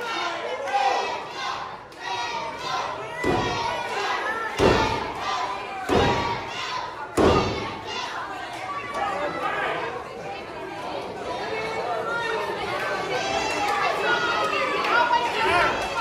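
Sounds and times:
crowd chatter and calls: 0:00.0 - 0:16.0.

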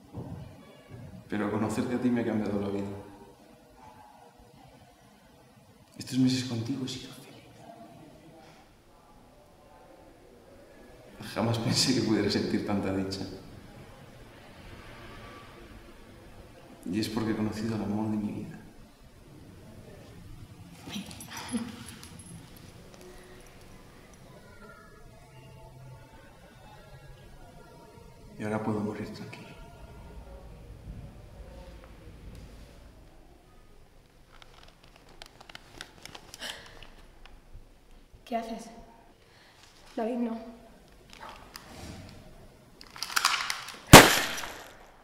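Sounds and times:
faint room noise: 0:00.0 - 0:45.0
woman giggling softly: 0:20.8 - 0:22.1
loud gunshot: 0:43.9 - 0:44.9.

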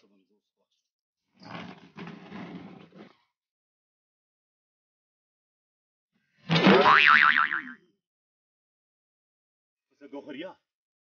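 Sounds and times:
cartoon boing: 0:06.5 - 0:07.8.

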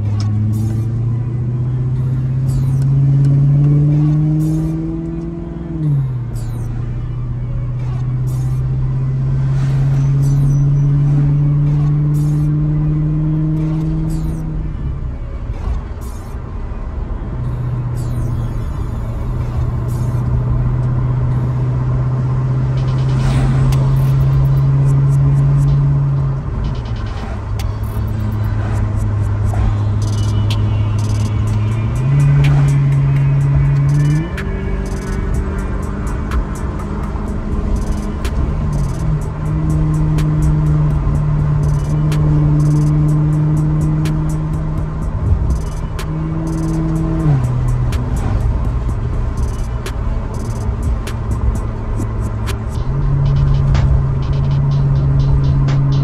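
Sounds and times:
background music with beat: 0:00.0 - 0:16.5, 0:17.5 - 0:56.0
car engine from inside cabin: 0:00.0 - 0:56.0
road noise: 0:00.0 - 0:56.0.

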